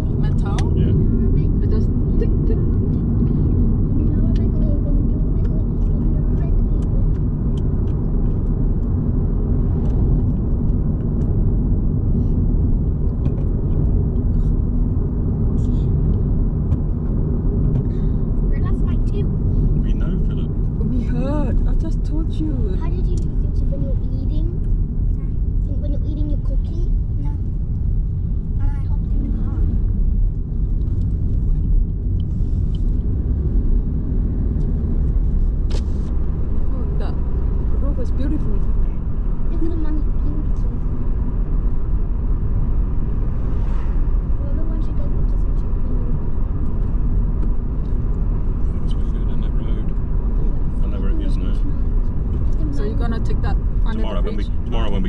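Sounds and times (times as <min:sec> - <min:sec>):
car driving heard from inside: 0:00.0 - 0:55.0
quiet voices: 0:19.8 - 0:23.3, 0:48.6 - 0:55.0.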